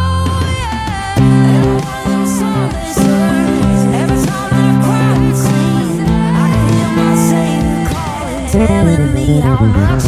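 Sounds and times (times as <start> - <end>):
electric bass guitar: 0.0 - 10.0
pop song recording: 0.0 - 10.0
woman singing: 0.0 - 10.0.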